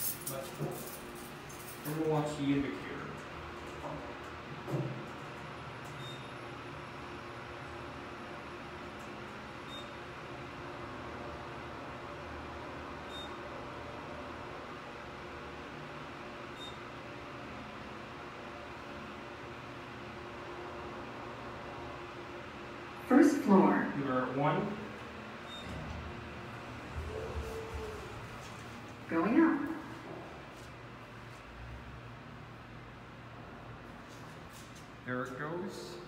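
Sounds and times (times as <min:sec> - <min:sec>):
elevator hum: 0:00.0 - 0:34.1.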